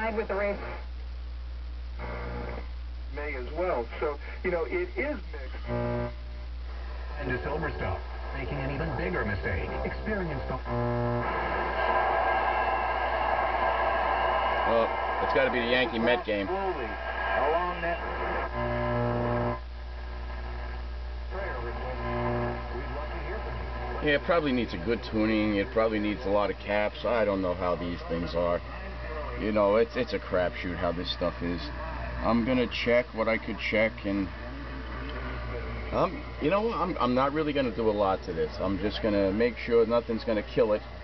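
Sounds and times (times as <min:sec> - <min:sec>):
radio mains hum: 0:00.0 - 0:41.0.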